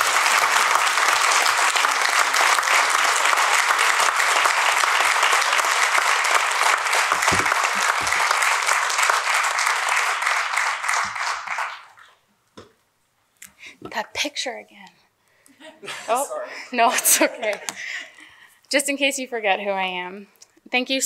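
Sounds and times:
audience applauding: 0.0s - 12.1s.

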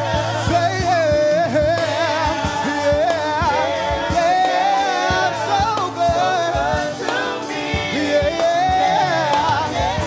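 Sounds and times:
backing singers: 0.0s - 10.0s
instrumental accompaniment with beat: 0.0s - 10.0s
lead singer ornamented melody: 0.0s - 10.0s.

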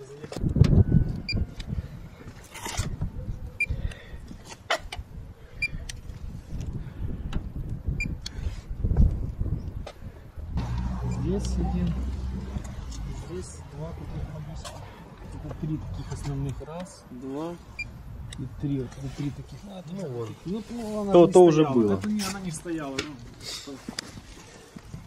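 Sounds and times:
low rumble: 10.5s - 14.6s.

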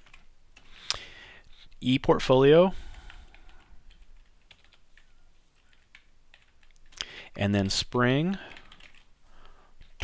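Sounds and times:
computer keyboard typing: 0.0s - 0.8s, 2.9s - 9.1s.

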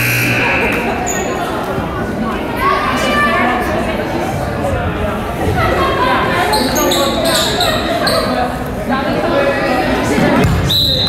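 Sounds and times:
players' voices echoing: 0.0s - 10.7s.

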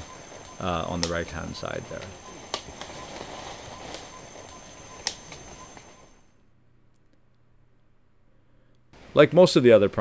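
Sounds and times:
steady high whine: 0.0s - 6.9s, 7.6s - 10.0s
rustling of leaves and stems: 0.2s - 5.6s.

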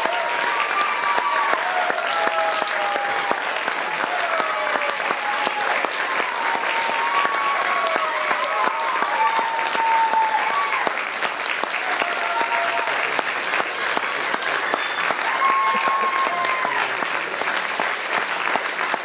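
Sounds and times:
drawn-out cheers: 0.0s - 13.3s, 14.6s - 17.2s
audience applauding: 0.0s - 19.0s.

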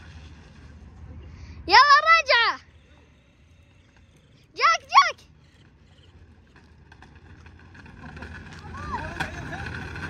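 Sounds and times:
electric scooter rolling on asphalt: 0.0s - 10.0s.

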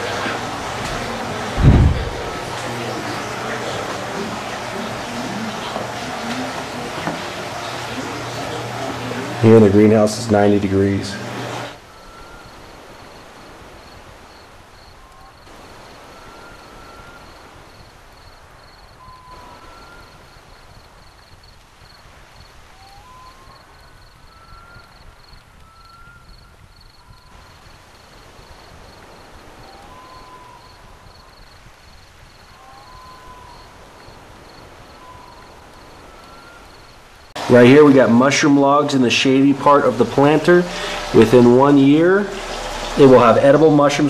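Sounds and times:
background hiss: 0.0s - 44.0s
whistled upward chirps: 11.7s - 12.8s, 14.8s - 17.9s, 18.7s - 20.5s, 22.7s - 27.5s, 29.6s - 31.4s, 32.5s - 37.0s.

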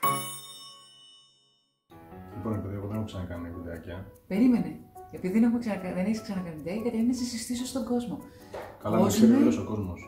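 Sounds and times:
bell-like chime: 0.0s - 2.7s.

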